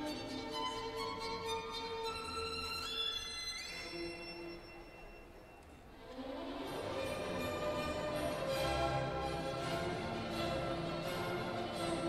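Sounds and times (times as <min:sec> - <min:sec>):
violin melody: 0:00.0 - 0:05.1, 0:06.0 - 0:12.0
orchestral backing: 0:00.0 - 0:12.0.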